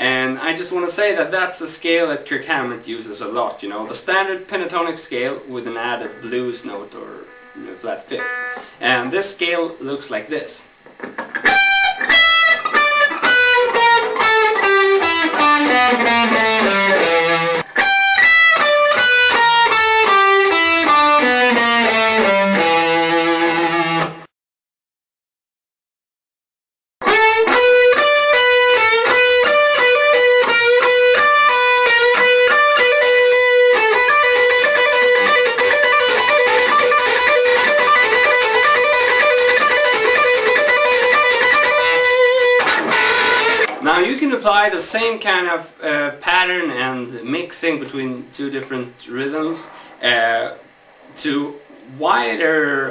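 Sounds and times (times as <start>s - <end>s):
electric guitar lead lick: 4.7s - 9.4s, 10.7s - 24.3s, 27.0s - 44.0s
electric guitar playing blues runs: 5.2s - 9.2s, 10.8s - 24.3s, 27.0s - 43.8s.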